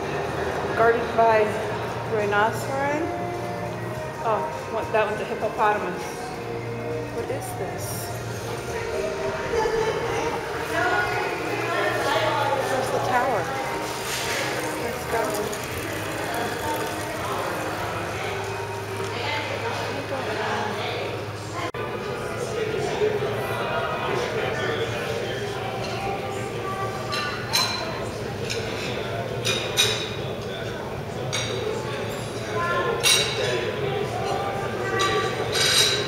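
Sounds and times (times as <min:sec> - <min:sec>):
faint background voices: 0:00.0 - 0:36.0
indistinct background chatter: 0:00.0 - 0:36.0
fountain water running into basin: 0:11.2 - 0:19.3
tableware clinking: 0:13.8 - 0:19.1, 0:27.1 - 0:30.4, 0:31.3 - 0:36.0.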